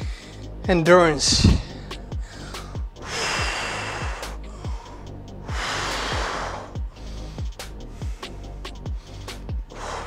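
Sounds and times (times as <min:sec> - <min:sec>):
man breathing heavily: 0:00.0 - 0:00.6, 0:01.3 - 0:10.0
music with steady beat: 0:00.0 - 0:10.0.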